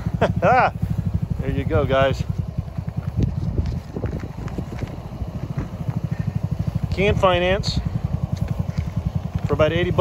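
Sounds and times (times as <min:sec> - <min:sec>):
go-kart engine idling: 0:00.0 - 0:10.0.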